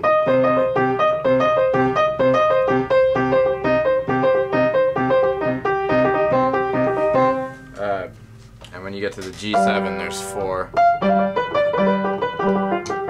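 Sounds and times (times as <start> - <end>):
piano arpeggio: 0.0 - 8.1, 9.5 - 13.0.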